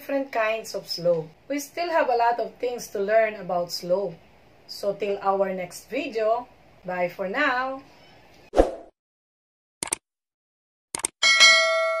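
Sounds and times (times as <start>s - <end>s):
bell ding: 11.2s - 12.0s.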